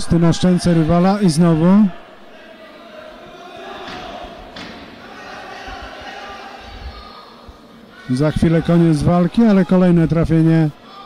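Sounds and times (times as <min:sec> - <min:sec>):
hall background noise: 0:00.0 - 0:11.0
voices around boxing ring: 0:00.0 - 0:11.0.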